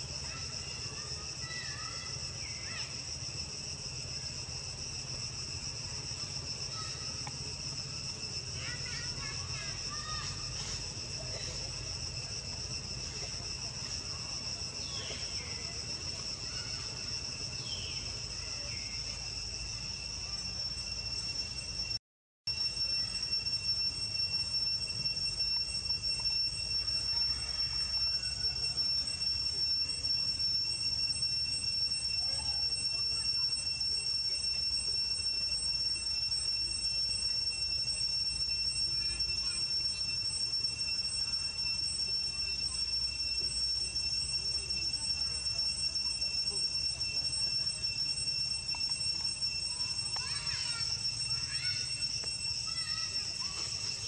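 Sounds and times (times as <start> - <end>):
high-pitched insect drone: 0.0 - 54.0.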